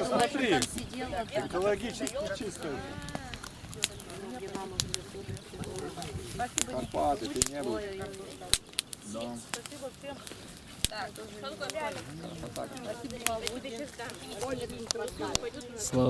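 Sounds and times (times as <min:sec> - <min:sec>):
indistinct conversation: 0:00.0 - 0:16.0.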